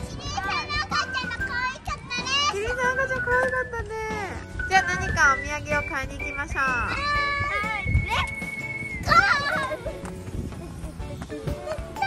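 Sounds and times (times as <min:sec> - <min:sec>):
girl's excited voice: 0:00.2 - 0:02.7, 0:06.9 - 0:08.3, 0:09.1 - 0:09.8.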